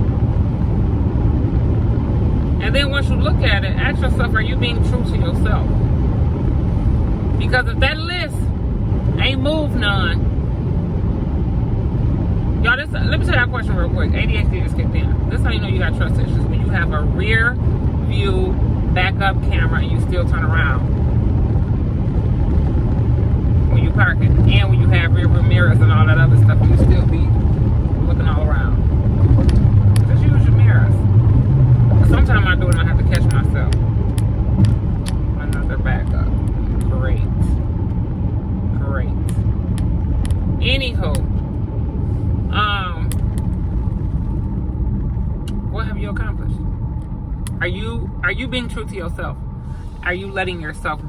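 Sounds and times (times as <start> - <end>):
car engine and road rumble: 0.0 - 51.0
person talking: 32.0 - 33.8, 35.4 - 37.5, 40.6 - 41.2, 42.5 - 43.1.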